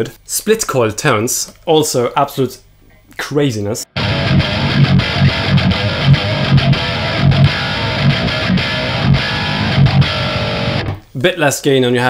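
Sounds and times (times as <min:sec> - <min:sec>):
distorted electric guitar riff: 0:04.0 - 0:11.0.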